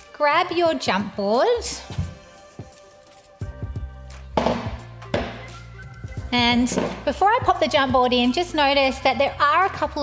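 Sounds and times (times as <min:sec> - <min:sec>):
soft background music: 0:00.0 - 0:10.0
jump board knocking on frame: 0:04.4 - 0:05.4, 0:06.7 - 0:07.0.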